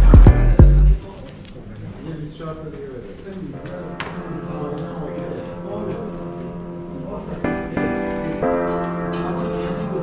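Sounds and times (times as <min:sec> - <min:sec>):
piano chord ringing: 0:03.7 - 0:10.0.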